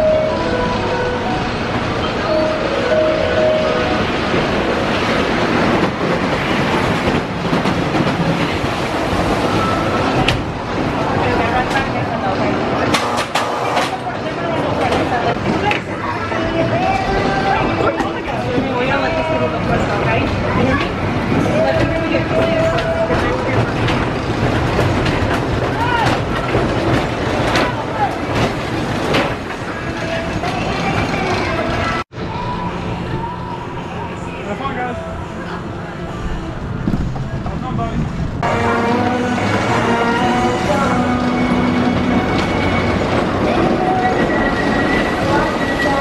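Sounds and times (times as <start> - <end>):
wheels clicking on rails: 0.0 - 32.4
people's voices: 0.0 - 46.0
roller coaster rumbling and clattering: 0.0 - 46.0.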